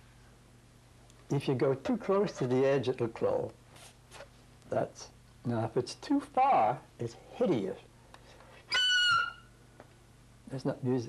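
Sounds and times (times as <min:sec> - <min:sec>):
clarinet squeal: 0:08.7 - 0:09.5.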